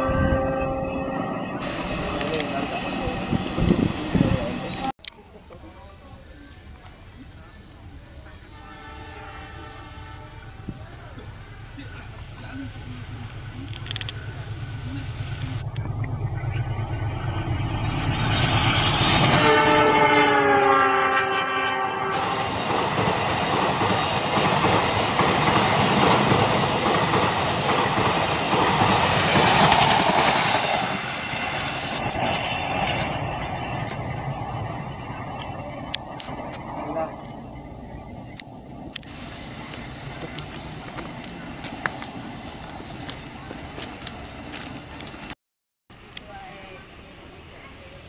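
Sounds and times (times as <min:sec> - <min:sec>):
locomotive horn blast: 0:00.0 - 0:01.8, 0:08.5 - 0:10.6, 0:18.9 - 0:22.6
train coaches roaring past: 0:00.0 - 0:45.4
steady low rumble: 0:11.3 - 0:19.0.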